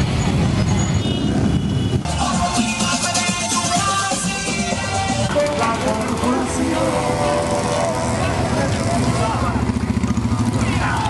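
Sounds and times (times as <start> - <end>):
motorcycle engines running: 0.0 - 11.0
crowd talking and calling out: 2.0 - 11.0
music: 2.1 - 7.5.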